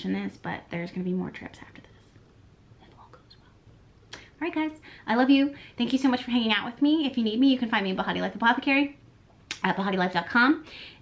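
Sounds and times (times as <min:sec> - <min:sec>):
woman whispering: 0:01.4 - 0:03.7.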